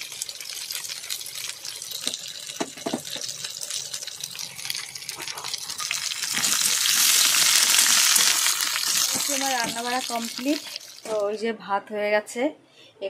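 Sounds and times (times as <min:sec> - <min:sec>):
vegetables frying in oil: 0:00.0 - 0:11.4.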